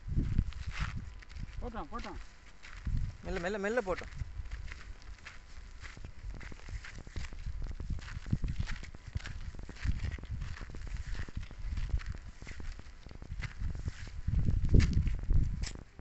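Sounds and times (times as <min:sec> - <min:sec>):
footsteps crunching on dirt path: 0:00.0 - 0:16.0
wind buffeting microphone: 0:00.0 - 0:16.0.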